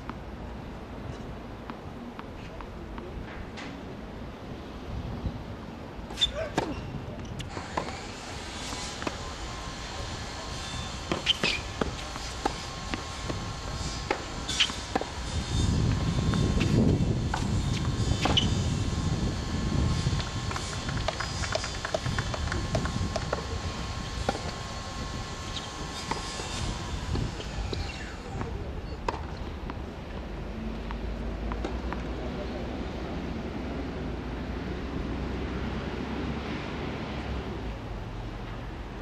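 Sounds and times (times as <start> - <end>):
tennis ball hits and bounces: 6.1 - 8.1, 11.0 - 15.2, 16.2 - 18.6, 20.5 - 23.5, 27.7 - 29.8.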